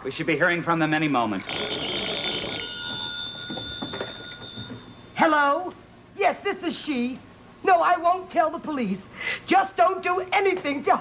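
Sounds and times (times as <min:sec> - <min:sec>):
telephone bell ringing: 0:01.4 - 0:05.2.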